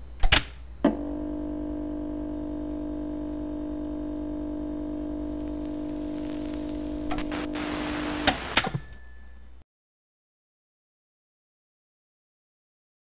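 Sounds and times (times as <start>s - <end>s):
held electronic drone: 0.9s - 9.6s
hiss: 7.3s - 8.8s.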